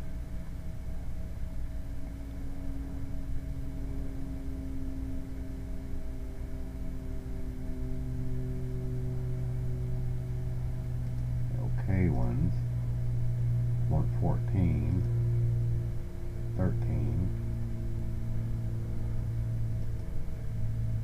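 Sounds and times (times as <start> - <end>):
low background hum: 0.0 - 21.0
deep strong tone: 16.4 - 18.4.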